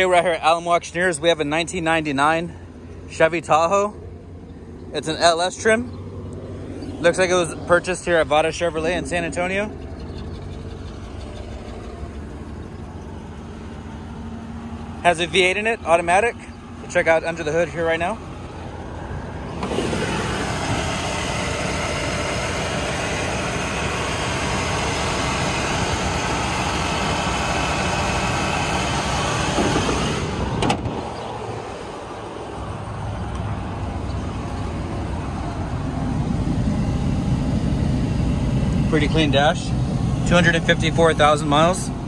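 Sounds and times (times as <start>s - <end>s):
car engine idling: 0.0s - 42.0s.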